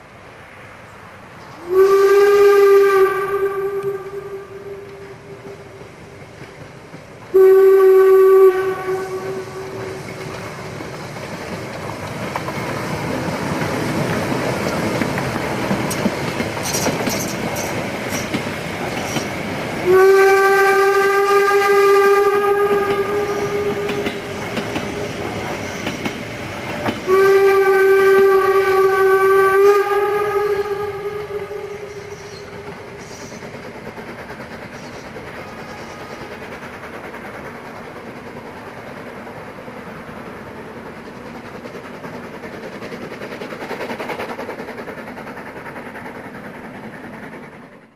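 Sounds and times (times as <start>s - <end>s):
passing train running noise: 0.0s - 47.9s
steam locomotive whistle: 1.6s - 5.8s, 7.3s - 10.7s, 19.0s - 26.0s, 26.8s - 33.5s.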